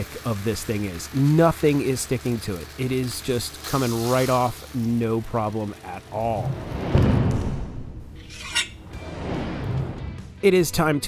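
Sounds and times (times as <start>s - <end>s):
deep boom hit: 6.9s - 8.0s.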